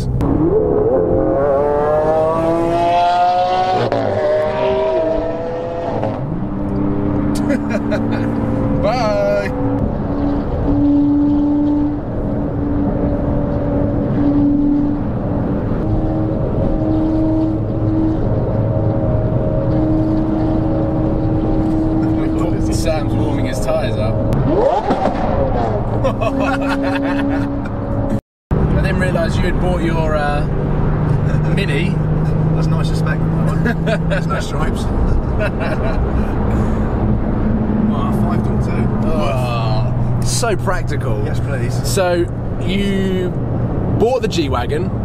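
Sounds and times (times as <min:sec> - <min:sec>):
car engine accelerating: 0:00.0 - 0:45.0
tyre and road noise: 0:00.0 - 0:45.0.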